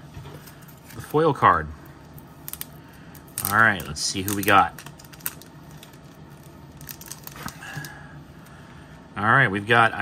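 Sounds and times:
plastic sleeve crinkling: 2.2s - 8.0s.

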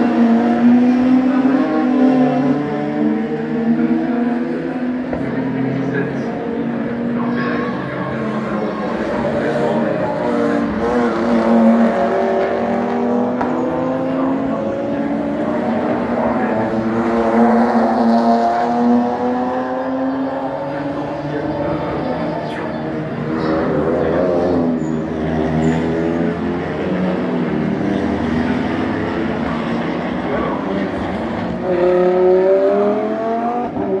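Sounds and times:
racing car engines at full throttle: 0.0s - 34.0s.

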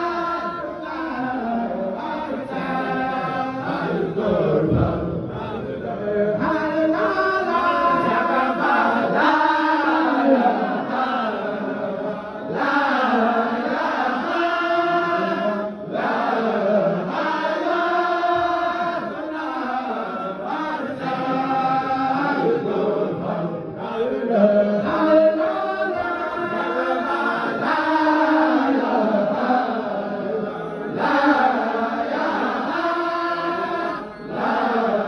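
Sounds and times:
men chanting in unison: 0.0s - 35.0s.

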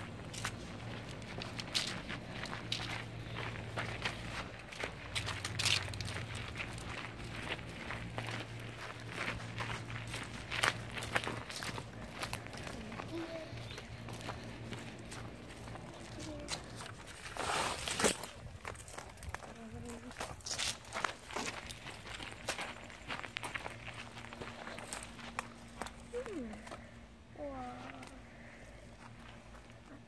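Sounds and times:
footsteps on dirt and gravel: 0.0s - 27.0s, 27.8s - 30.0s
steady low hum: 0.0s - 30.0s.

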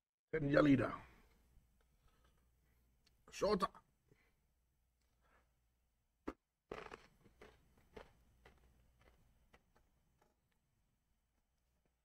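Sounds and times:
person crunching a snack: 6.3s - 10.6s.

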